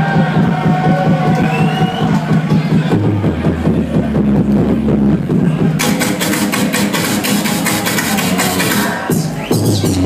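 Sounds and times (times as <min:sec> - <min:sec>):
dubstep over club sound system: 0:00.0 - 0:10.0.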